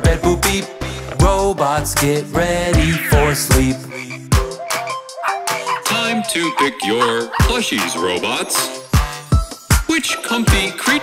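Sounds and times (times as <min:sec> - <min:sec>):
children's song instrumental: 0:00.0 - 0:11.0
cartoon frog croaking: 0:02.6 - 0:08.7
drum beat: 0:02.8 - 0:09.9.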